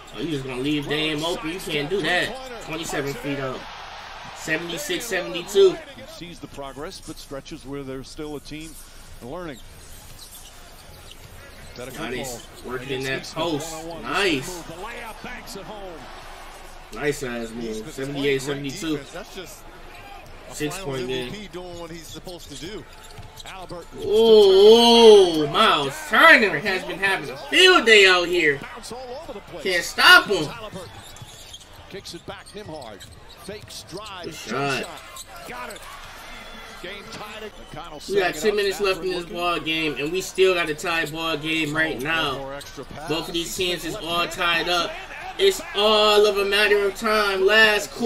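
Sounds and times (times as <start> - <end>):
commentator talking: 0.0 - 3.6, 4.3 - 7.1, 11.7 - 16.2, 16.9 - 19.6, 20.4 - 22.8, 23.5 - 31.0, 33.6 - 35.8, 36.8 - 48.0
arena crowd noise: 0.0 - 48.0
basketball dribbling on court: 23.0 - 23.6
basketball bouncing on court: 23.0 - 23.8, 30.5 - 34.0.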